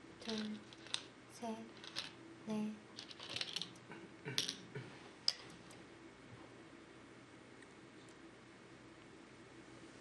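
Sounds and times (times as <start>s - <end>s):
game stones clicking on wooden board: 0.2s - 1.1s, 1.7s - 2.2s, 3.0s - 3.8s.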